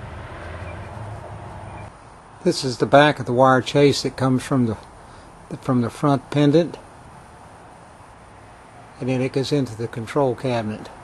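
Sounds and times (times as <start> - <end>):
broad rushing noise: 0.0 - 11.0
low mechanical hum: 0.0 - 11.0.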